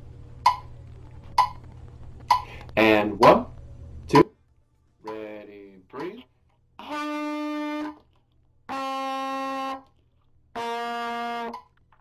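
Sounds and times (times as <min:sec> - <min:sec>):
man counting off: 0:02.8 - 0:03.5, 0:05.0 - 0:06.2.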